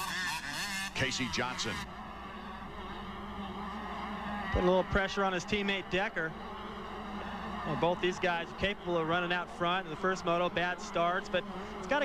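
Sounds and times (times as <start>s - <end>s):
motocross bikes engine drone: 0.0s - 12.0s.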